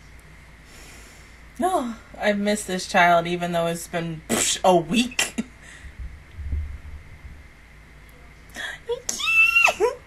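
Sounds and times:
woman squealing: 9.1 - 10.0.

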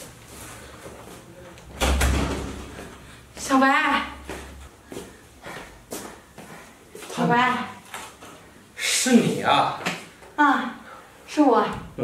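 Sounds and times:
wooden door shutting: 1.8 - 2.7.

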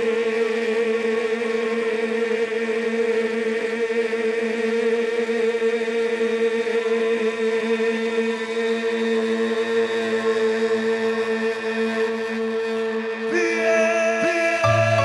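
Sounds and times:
live band holding a chord: 13.8 - 15.0.

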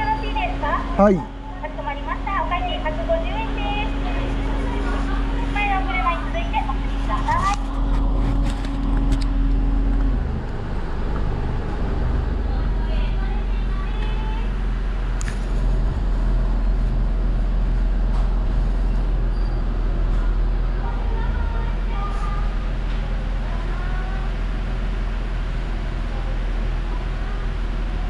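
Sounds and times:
faint voices: 0.0 - 9.0, 12.1 - 14.7, 20.0 - 24.6
car engine idling: 0.0 - 28.0
higher steady hum: 0.0 - 28.0.

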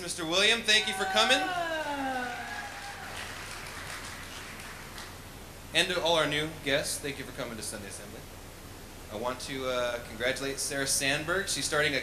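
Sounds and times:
light scattered applause: 0.7 - 5.2.

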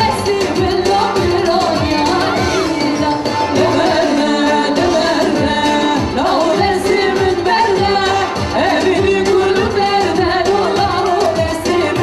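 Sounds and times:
amplified band accompaniment: 0.0 - 12.0
woman singing into microphone: 0.0 - 12.0.

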